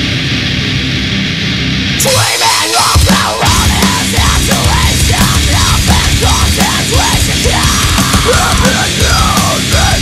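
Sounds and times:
bass and drums: 0.0s - 10.0s
distorted electric guitar: 0.0s - 10.0s.

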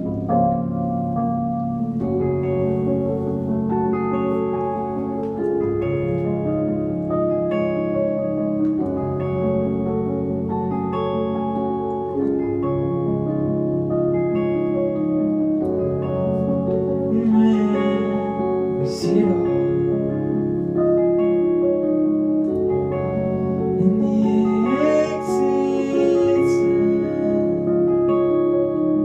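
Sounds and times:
pedal steel guitar notes: 0.0s - 29.0s
sustained keyboard chords: 0.0s - 29.0s.

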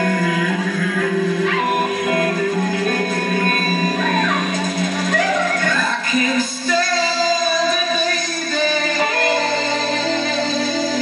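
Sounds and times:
electric guitar: 0.0s - 11.0s
live rock band playing: 0.0s - 11.0s.

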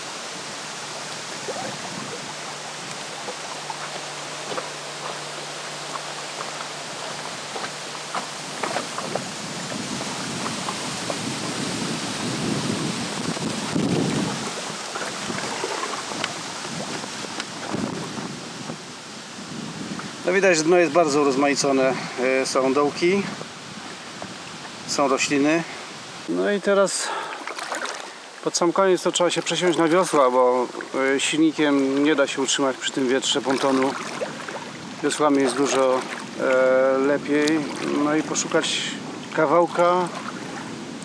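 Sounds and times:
wind buffeting microphone: 0.0s - 26.3s, 29.9s - 41.0s
choppy water lapping and splashing: 0.0s - 41.0s.

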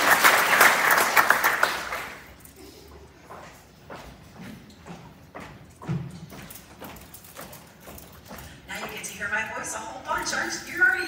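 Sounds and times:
footsteps on wooden floor: 2.9s - 10.3s.

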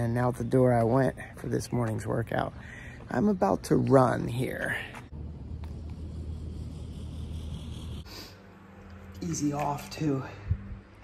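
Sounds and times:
low outdoor rumble: 2.3s - 11.0s.

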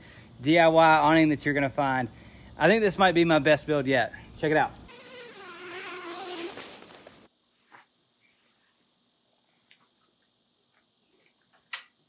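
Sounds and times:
zipper being pulled open: 4.9s - 7.3s.

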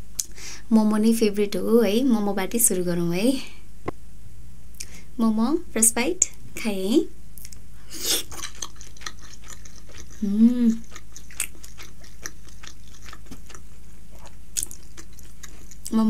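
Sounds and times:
person chewing wetly: 7.4s - 16.0s.

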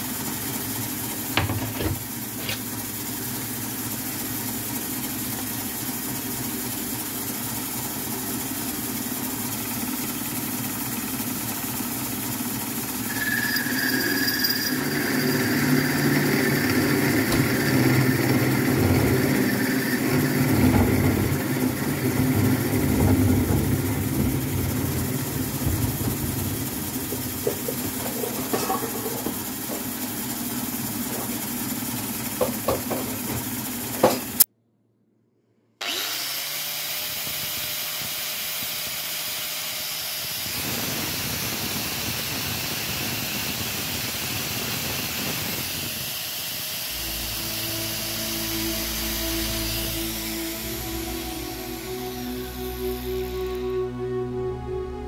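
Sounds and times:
metal lathe humming: 11.9s - 34.1s, 46.4s - 54.0s
cutting tool biting workpiece: 35.8s - 37.9s.

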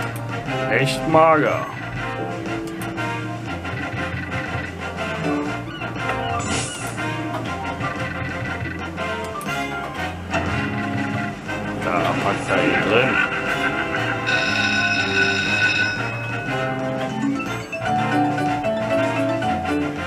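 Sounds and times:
slot machine electronic music: 0.0s - 20.0s.

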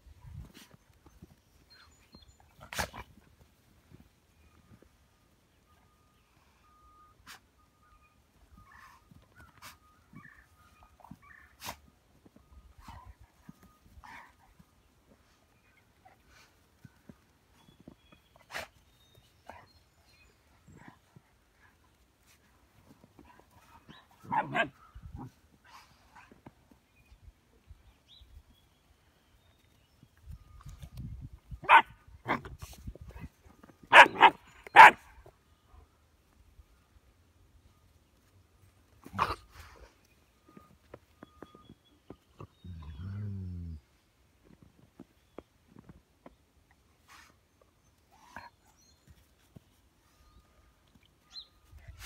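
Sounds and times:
puppy barking: 24.3s - 24.8s, 31.6s - 32.4s, 33.9s - 35.1s.

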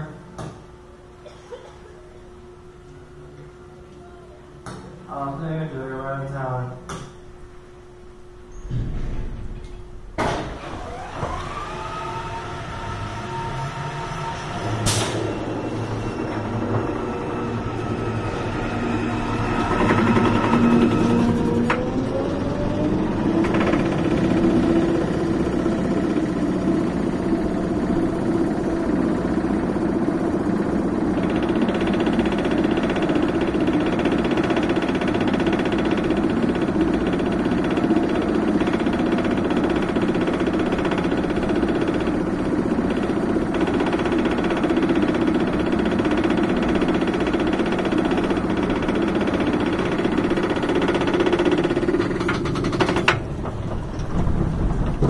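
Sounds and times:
roller coaster chain lift rattle: 31.2s - 55.0s.

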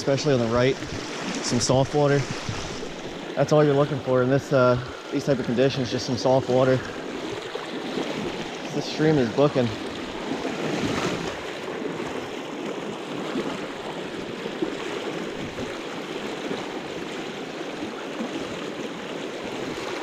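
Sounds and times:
stream rushing over rocks: 0.0s - 12.2s, 12.9s - 20.0s.

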